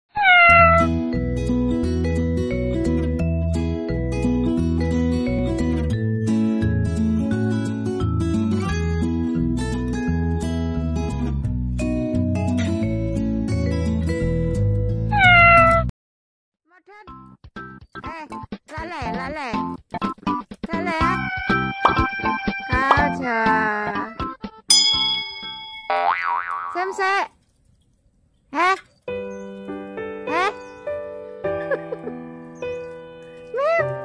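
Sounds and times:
cat meowing: 0.1s - 0.9s, 15.1s - 15.9s, 21.0s - 23.1s
background music: 0.9s - 15.1s, 17.1s - 25.8s.

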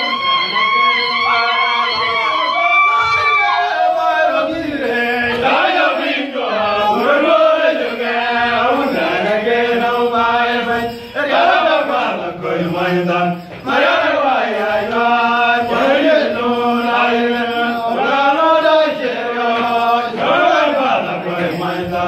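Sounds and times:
men chanting: 0.0s - 22.0s.

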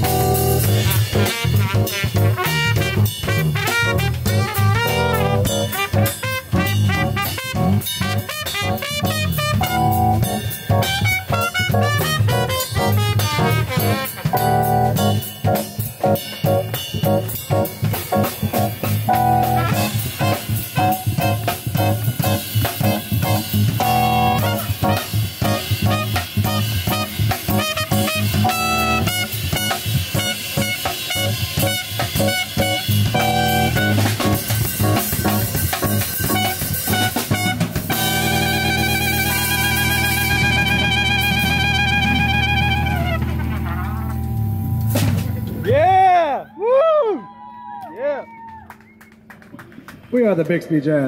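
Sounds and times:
trumpet playing melody: 0.0s - 45.2s
drum kit: 0.0s - 46.4s
electric bass guitar: 0.0s - 46.5s
cymbal and drum strokes: 43.2s - 45.8s.

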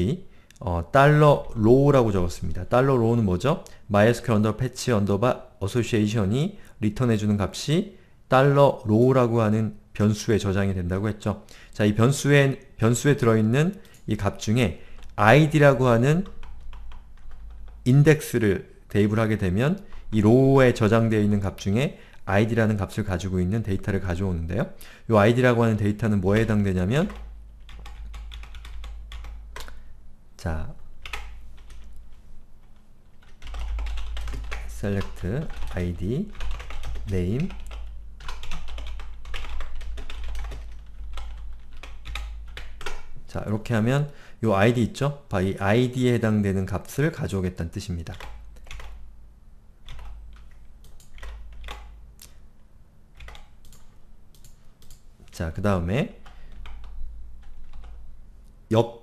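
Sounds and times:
faint low hum: 0.0s - 59.0s
computer keyboard keystrokes: 27.1s - 29.8s, 31.0s - 31.9s, 33.2s - 43.1s, 48.1s - 49.0s, 49.8s - 52.4s, 53.2s - 55.0s, 56.2s - 58.0s.

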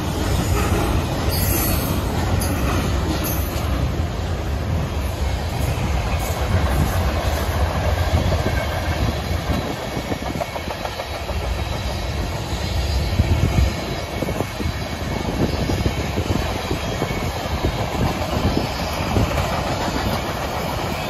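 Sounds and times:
freight train rolling past: 0.0s - 21.0s.

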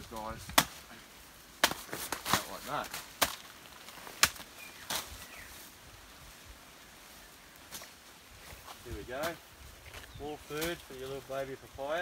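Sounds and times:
machete chopping: 0.5s - 0.8s, 1.6s - 3.5s, 4.1s - 5.0s.

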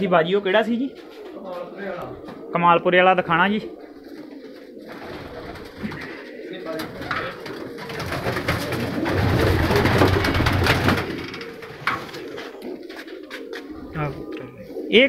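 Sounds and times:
pigeons cooing: 0.0s - 15.0s
wings flapping: 0.8s - 2.5s, 3.4s - 14.9s.

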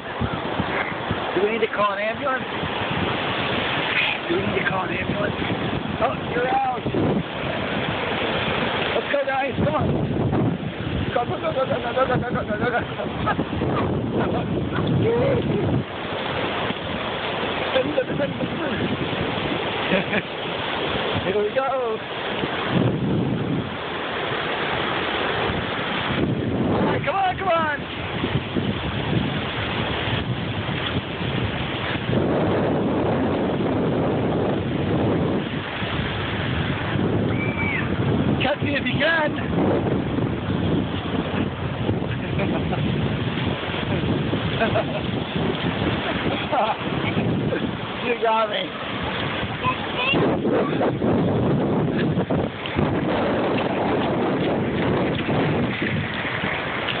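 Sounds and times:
surf breaking on beach: 0.0s - 57.0s
wind buffeting microphone: 0.0s - 57.0s.

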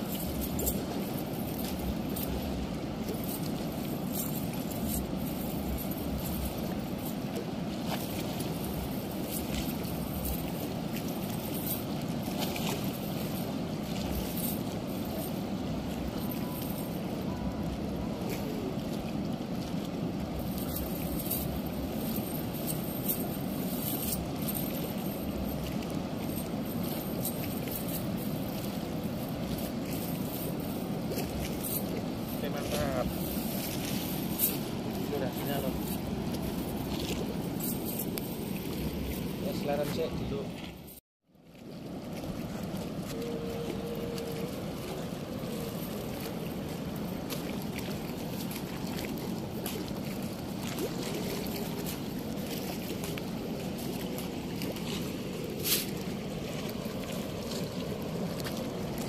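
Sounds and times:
chain weights clinking: 0.0s - 7.3s, 7.9s - 17.0s, 20.3s - 39.6s.

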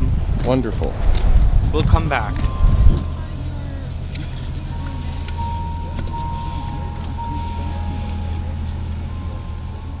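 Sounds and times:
vehicle rumble from inside cabin: 0.0s - 10.0s
faint voices: 0.5s - 10.0s.

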